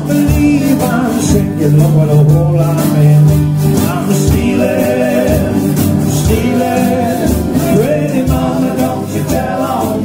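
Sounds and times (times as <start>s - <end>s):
acoustic guitar and mandolin strumming: 0.0s - 10.0s
low bass notes: 0.0s - 10.0s
washboard percussion beat: 0.0s - 10.0s.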